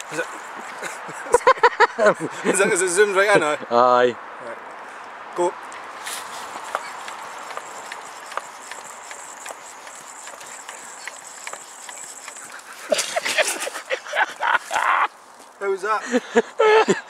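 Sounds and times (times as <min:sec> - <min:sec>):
faint steady hiss: 0:00.0 - 0:17.0.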